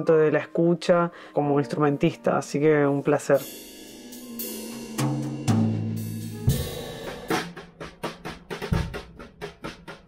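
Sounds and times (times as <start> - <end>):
acoustic drum kit: 3.3 - 10.0.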